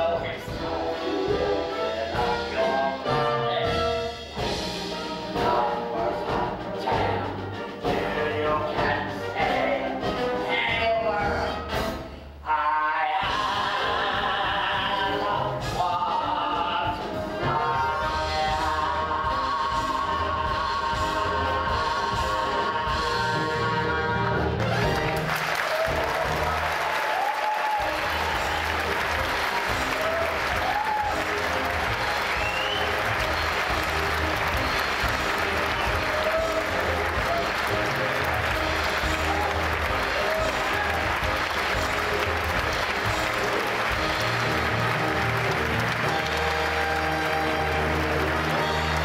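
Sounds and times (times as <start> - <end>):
orchestra playing: 0.0 - 49.0
audience applauding and cheering: 17.9 - 49.0
shouts and whoops: 25.6 - 28.7, 29.7 - 31.3.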